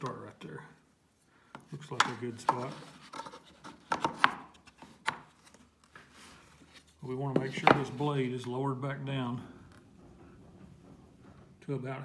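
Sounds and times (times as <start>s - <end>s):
wood and metal handling knocks: 7.3s - 8.0s.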